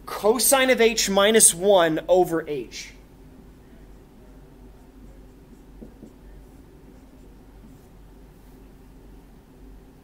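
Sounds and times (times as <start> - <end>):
steady low hum: 0.0 - 10.0
marker writing on whiteboard: 3.7 - 8.6.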